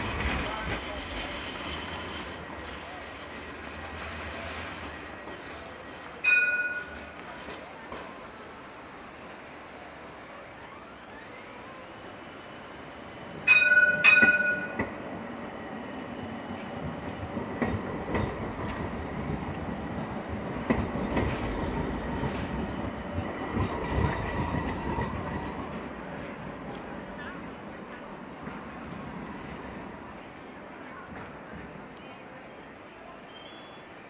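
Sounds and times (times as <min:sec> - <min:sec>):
high wheel squeal: 0:00.0 - 0:05.6
tram rolling rumble: 0:00.0 - 0:34.0
tram bell dings: 0:05.2 - 0:08.6, 0:13.3 - 0:15.2.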